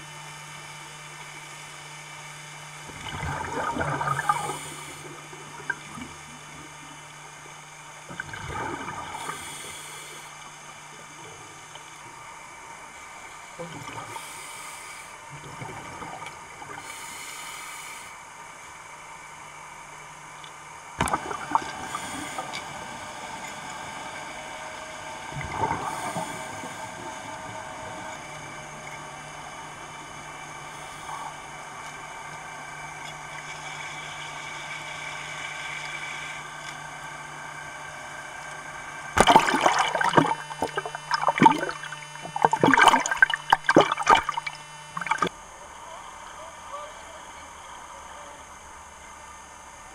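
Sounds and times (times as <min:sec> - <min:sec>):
low steady hum: 0:00.0 - 0:49.9
underwater water noise: 0:00.3 - 0:45.6
water splashing and bubbling: 0:02.9 - 0:06.8, 0:08.0 - 0:09.5, 0:21.0 - 0:36.0, 0:39.1 - 0:45.3.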